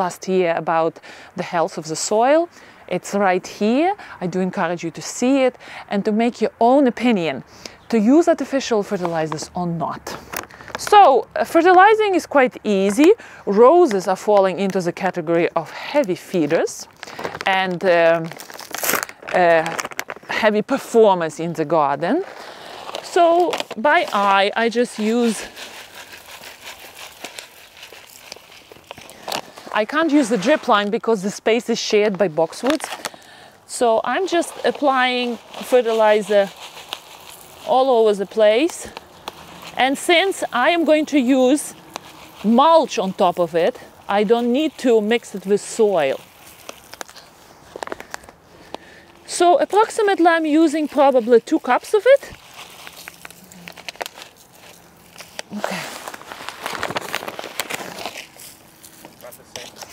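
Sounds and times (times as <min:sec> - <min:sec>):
granules rustling from a bag: 0:15.7 - 0:59.9.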